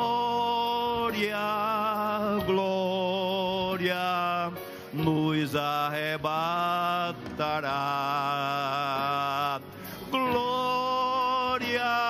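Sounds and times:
man singing a hymn: 0:00.0 - 0:12.0.

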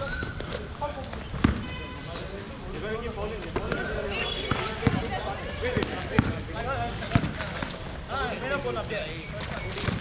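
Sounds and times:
basketball bouncing on concrete: 0:03.5 - 0:05.2, 0:05.8 - 0:06.4, 0:07.1 - 0:07.7.

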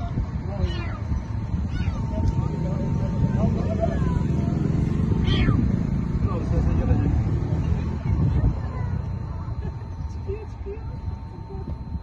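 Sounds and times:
cat meowing: 0:00.6 - 0:02.2, 0:05.2 - 0:05.7.

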